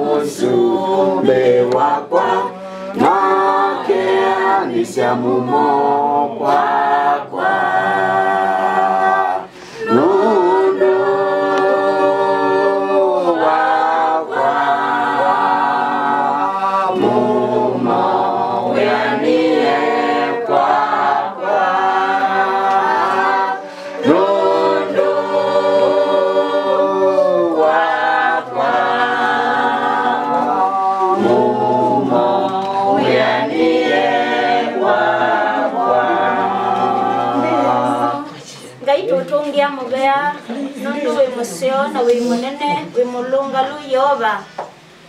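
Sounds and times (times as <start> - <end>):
group singing unaccompanied: 0.0 - 43.6.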